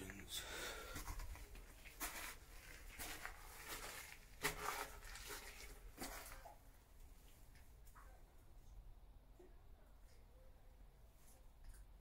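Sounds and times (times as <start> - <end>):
footsteps on muddy stony floor: 0.0 - 6.6
clothing rustle: 1.0 - 7.6.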